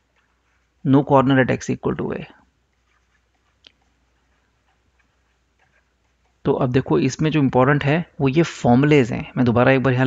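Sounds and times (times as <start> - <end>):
stylus tapping on tablet: 2.7 - 6.5.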